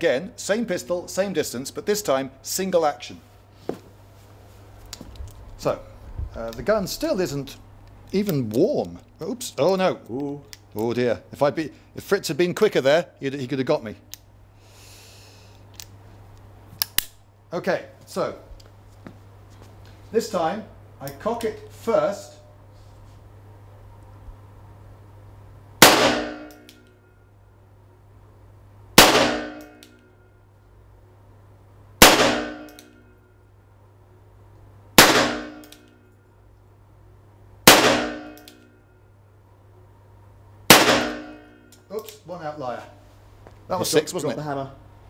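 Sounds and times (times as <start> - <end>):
revolver metallic clicks: 15.6 - 17.2, 25.8 - 27.0, 32.2 - 33.1, 35.0 - 36.2, 37.7 - 38.8
revolver shots echoing indoors: 25.8 - 27.2, 28.9 - 30.3, 32.0 - 33.4, 34.9 - 36.3, 37.6 - 39.1, 40.6 - 41.9.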